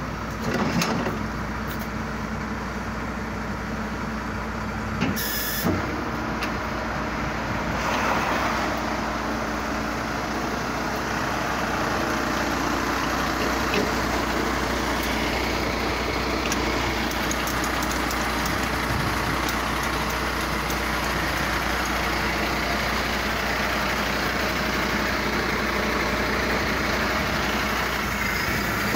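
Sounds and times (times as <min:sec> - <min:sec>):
diesel engine idling: 0:00.0 - 0:28.9.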